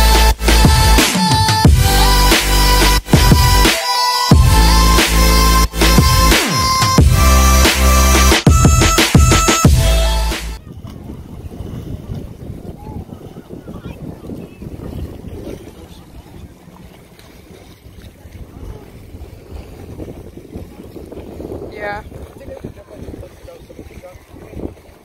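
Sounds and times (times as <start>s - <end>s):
intro music: 0.0s - 10.6s
open-water ambience: 0.0s - 25.0s
faint distant voices: 10.6s - 25.0s
wind buffeting microphone: 10.6s - 25.0s.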